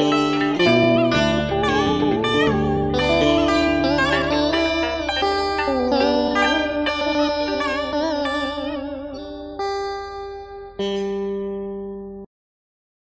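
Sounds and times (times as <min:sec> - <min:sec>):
plucked strings with bending notes: 0:00.0 - 0:12.3.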